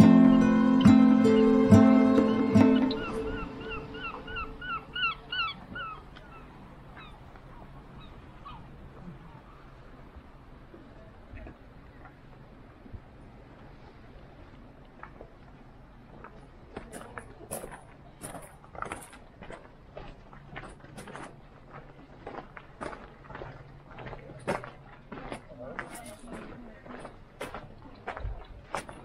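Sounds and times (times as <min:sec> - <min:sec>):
footsteps crunching on gravel: 0:16.1 - 0:29.0.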